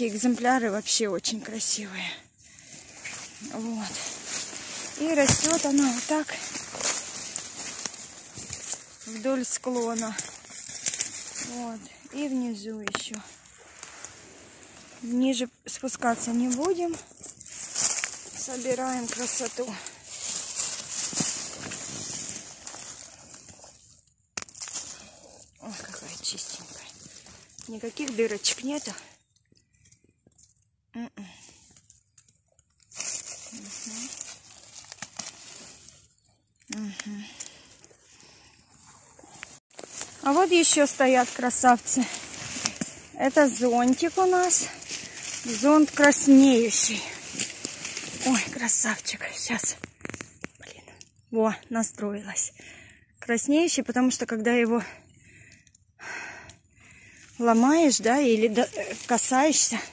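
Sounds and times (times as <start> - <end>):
rustling and crinkling leaves: 0.0 - 51.0, 54.7 - 59.9
person speaking: 3.4 - 4.2, 4.9 - 6.6, 18.4 - 20.0, 27.6 - 29.1, 40.2 - 42.3, 43.1 - 44.8, 45.4 - 47.2, 57.4 - 59.9.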